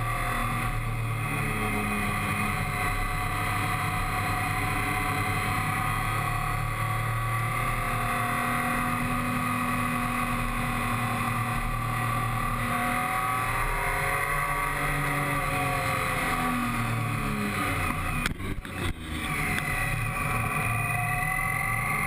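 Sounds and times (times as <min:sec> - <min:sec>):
motorcycle engine running: 0:00.0 - 0:22.0.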